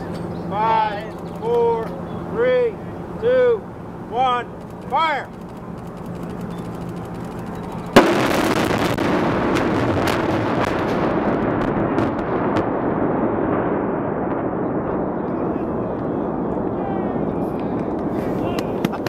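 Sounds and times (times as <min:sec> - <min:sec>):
long rolling rumble: 0:00.0 - 0:19.0
explosive cracks: 0:04.6 - 0:19.0
explosion blast: 0:07.9 - 0:18.8.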